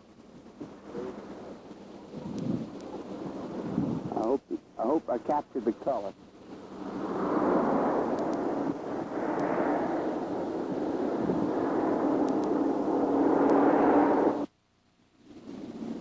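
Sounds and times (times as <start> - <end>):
steady rushing noise: 0.0 - 14.6
faint low hum: 0.0 - 16.0.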